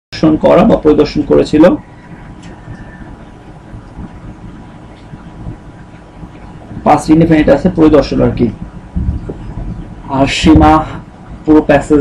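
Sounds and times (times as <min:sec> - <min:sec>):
room background noise: 0:00.2 - 0:12.0
person speaking: 0:06.8 - 0:08.7, 0:10.0 - 0:12.0.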